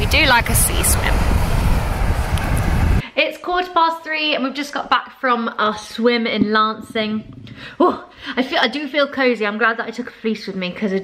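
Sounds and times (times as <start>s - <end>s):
wind buffeting microphone: 0.0s - 3.0s, 6.5s - 7.9s.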